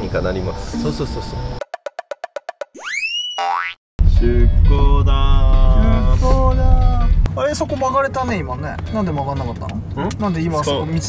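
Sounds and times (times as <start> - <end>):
springy boing: 3.4 - 3.8.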